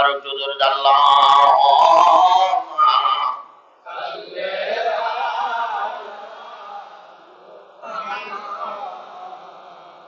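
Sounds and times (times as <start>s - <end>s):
man chanting: 0.0s - 6.8s.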